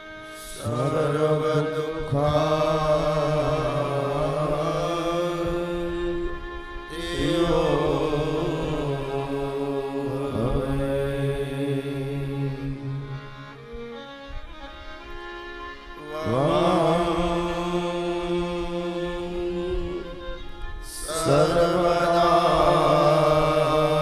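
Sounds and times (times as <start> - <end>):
man chanting melodically: 0.4 - 13.6, 16.0 - 24.0.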